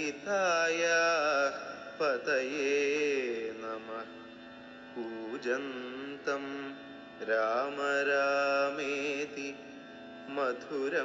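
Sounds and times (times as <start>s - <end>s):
person singing devotional song: 0.0s - 11.0s
steady musical accompaniment: 0.0s - 11.0s.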